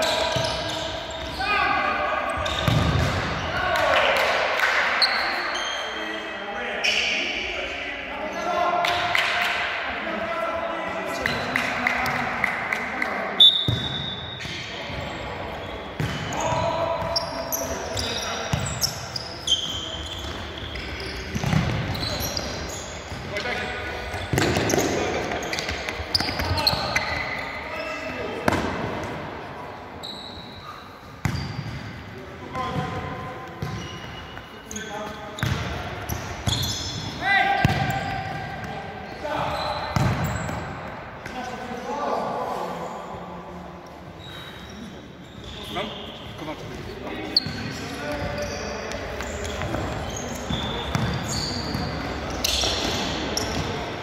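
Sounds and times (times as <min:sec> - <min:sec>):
shoes squeaking on court: 0:00.0 - 0:01.6, 0:02.3 - 0:03.0, 0:05.0 - 0:06.1, 0:13.4 - 0:29.2, 0:30.0 - 0:32.0, 0:32.6 - 0:40.8, 0:44.2 - 0:54.0
ball kicks and bounces: 0:37.6 - 0:38.0.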